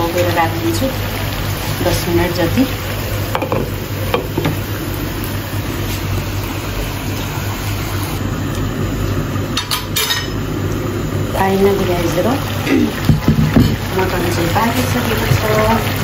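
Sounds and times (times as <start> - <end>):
curry sizzling hiss: 0.0 - 16.0.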